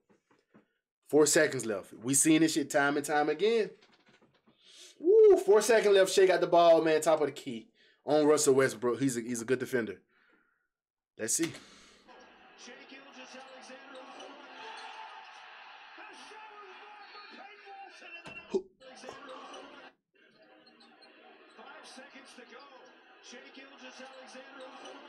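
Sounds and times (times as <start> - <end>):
commentator speaking: 1.1 - 3.7, 5.0 - 10.0
arena crowd noise: 11.4 - 25.0.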